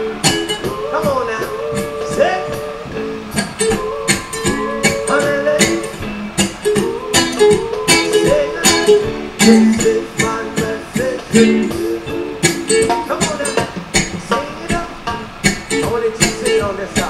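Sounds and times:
ukulele strummed: 0.0s - 17.0s.

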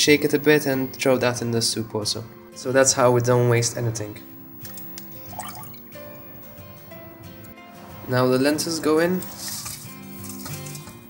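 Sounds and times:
background music with held tones: 0.0s - 11.0s
puree trickling into a pot: 4.7s - 6.0s.

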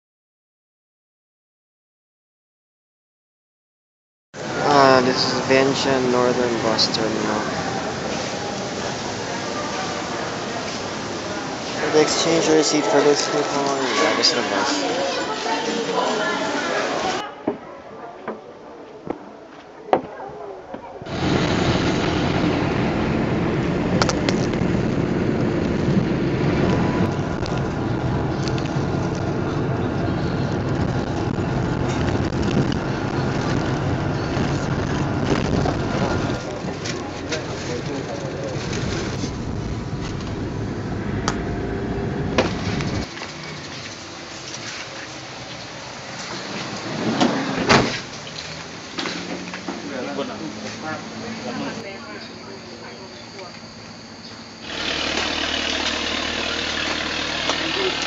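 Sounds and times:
background voices: 4.4s - 17.2s, 23.5s - 41.6s, 54.7s - 58.0s
bus engine and road rumble: 4.4s - 17.2s, 18.9s - 58.0s.

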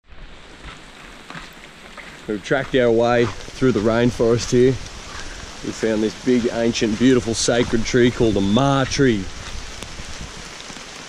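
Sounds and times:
light rain on foliage: 0.1s - 11.0s
water drips: 0.5s - 11.0s.

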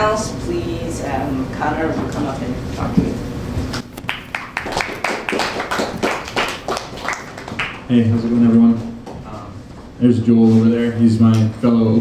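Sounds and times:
scattered hand-clapping: 4.0s - 7.9s.

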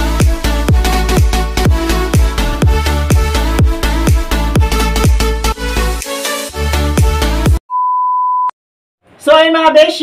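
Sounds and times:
electronic dance music: 0.0s - 7.6s
electronic beep tone: 7.7s - 8.6s.

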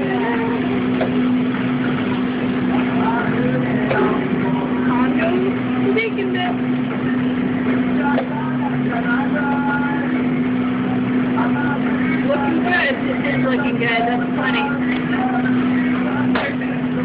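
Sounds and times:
indistinct voices talking: 0.0s - 17.0s
kitchen equipment humming: 0.0s - 17.0s.

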